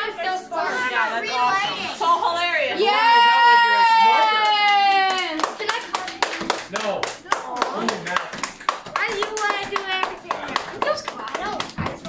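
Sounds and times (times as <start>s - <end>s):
people clapping: 4.0s - 12.0s.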